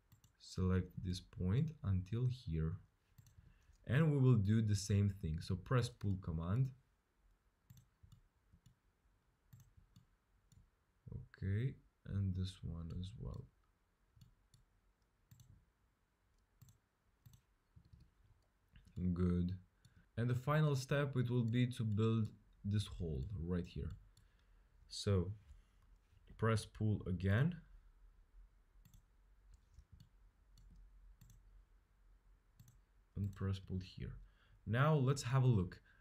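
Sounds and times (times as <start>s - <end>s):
computer mouse clicks: 0.0s - 0.4s, 3.2s - 3.8s, 7.7s - 8.8s, 9.5s - 10.7s, 15.3s - 15.6s, 16.4s - 19.1s, 28.8s - 31.5s, 32.6s - 33.5s.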